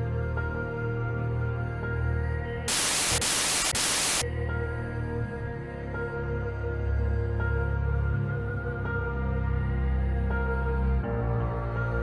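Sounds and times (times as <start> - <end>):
ambient background music: 0.0 - 12.0
television static hiss: 2.7 - 4.2.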